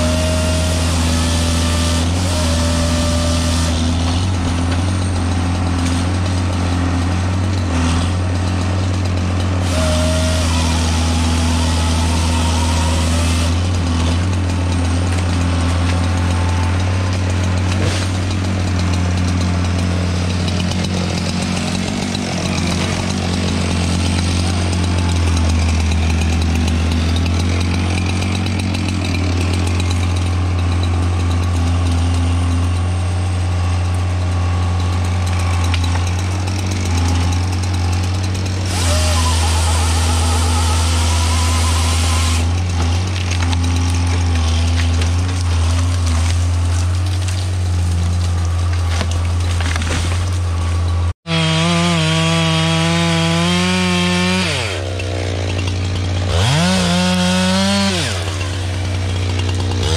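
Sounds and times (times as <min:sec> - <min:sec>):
diesel engine under load: 0:00.0 - 0:59.9
saw whine cutting tree trunk: 0:00.0 - 0:59.9.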